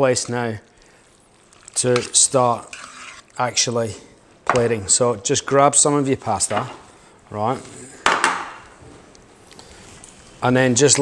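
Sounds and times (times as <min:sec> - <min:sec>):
metal tongs scraping metal pan: 0:02.0 - 0:03.3.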